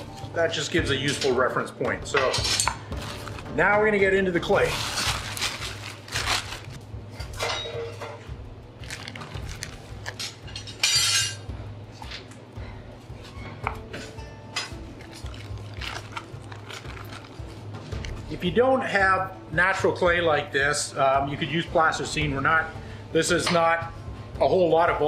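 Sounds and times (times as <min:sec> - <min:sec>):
plastic bag rustling: 0:03.0 - 0:03.7, 0:04.3 - 0:06.8, 0:08.8 - 0:10.3, 0:15.0 - 0:18.2.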